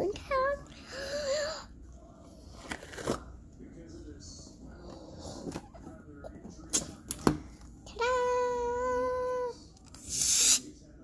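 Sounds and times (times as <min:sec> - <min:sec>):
balloon squealing: 0:10.0 - 0:10.6.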